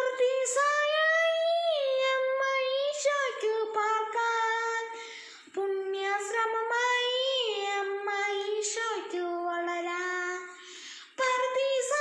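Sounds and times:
boy singing solo: 0.0 - 12.0.

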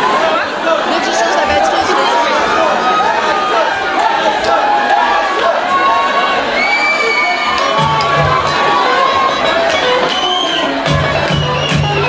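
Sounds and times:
audience cheering and shouting: 0.0 - 12.0.

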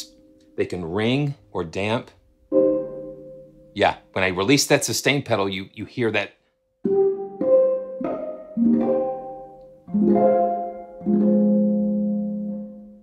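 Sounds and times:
harp plucked notes and chords: 2.5 - 4.5, 6.8 - 13.0.

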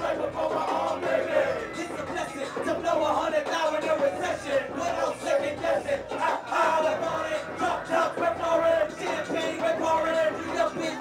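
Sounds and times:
club crowd shouting and chanting: 0.0 - 11.0.

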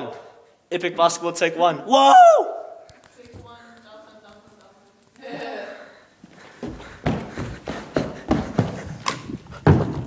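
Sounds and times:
running footsteps on carpet: 6.2 - 10.0.

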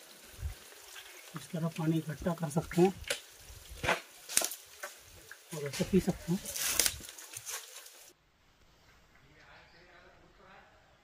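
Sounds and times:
faint water trickle: 0.0 - 8.1
water dripping onto a leaf: 0.0 - 8.1.

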